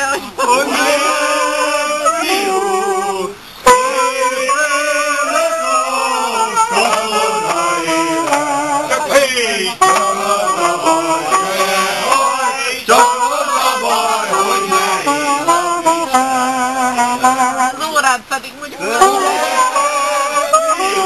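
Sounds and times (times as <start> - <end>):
men singing: 0.0 - 17.7, 18.8 - 21.0
reed instrument playing folk song: 0.0 - 21.0.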